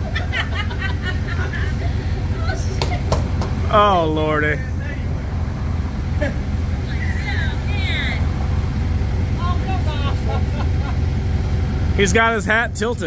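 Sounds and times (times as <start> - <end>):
forklift engine idling: 0.0 - 13.0.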